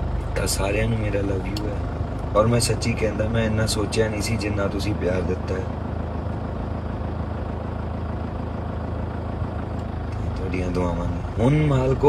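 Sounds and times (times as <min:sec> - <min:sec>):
car engine hum from inside: 0:00.0 - 0:12.0.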